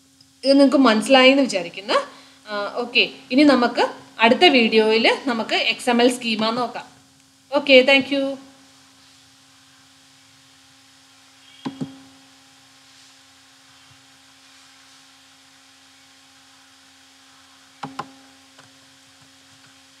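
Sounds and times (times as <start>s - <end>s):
low electrical hum: 0.0s - 20.0s
computer mouse clicking: 17.8s - 18.1s.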